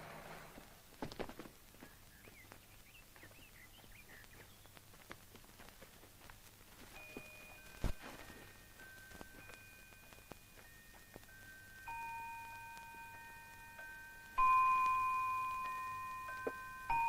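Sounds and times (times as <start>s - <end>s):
clock chimes: 6.9s - 17.0s.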